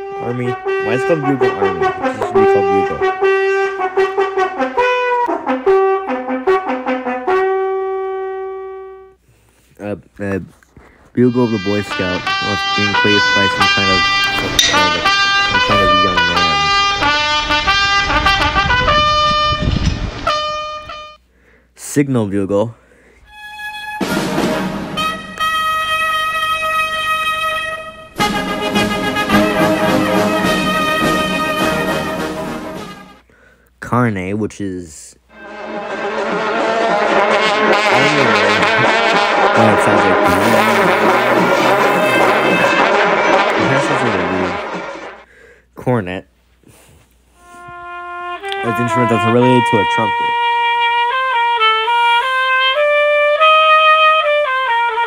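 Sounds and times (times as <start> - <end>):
bugle call: 0.0 - 9.1, 11.2 - 21.2, 23.3 - 33.2, 35.3 - 45.3, 47.4 - 55.0
long brass trumpets blowing: 0.0 - 9.3, 11.2 - 21.3, 23.2 - 33.3, 35.3 - 45.4, 46.7 - 55.0.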